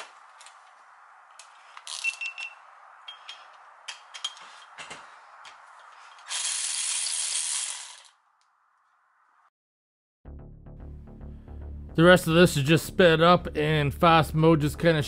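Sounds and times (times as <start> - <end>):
cordless ratchet running: 6.1 - 8.2.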